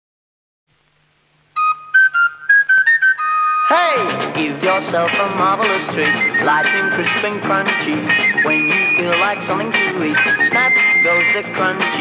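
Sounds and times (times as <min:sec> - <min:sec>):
sung jingle: 0:03.7 - 0:12.0
flute quick high notes: 0:10.0 - 0:11.5.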